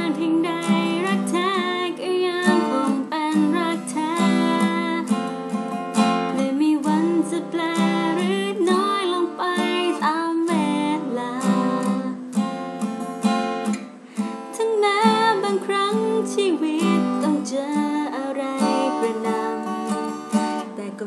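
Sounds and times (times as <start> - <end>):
woman singing: 0.0 - 5.3, 6.2 - 12.6, 14.5 - 21.0
acoustic guitar strumming: 0.0 - 21.0.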